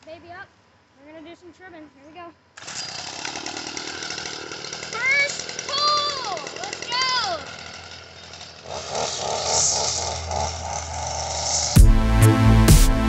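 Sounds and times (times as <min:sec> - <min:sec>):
string trimmer engine running: 0:02.6 - 0:12.8
boy whooping: 0:05.0 - 0:07.5
electronic music: 0:11.6 - 0:13.0.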